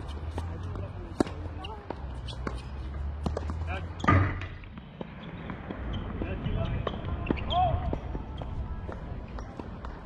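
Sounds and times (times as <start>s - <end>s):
tennis ball bouncing on hard court: 0.0s - 9.0s.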